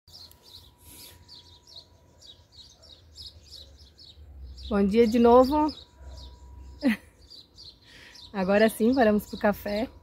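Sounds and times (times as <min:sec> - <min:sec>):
bird chirping: 0:00.1 - 0:10.0.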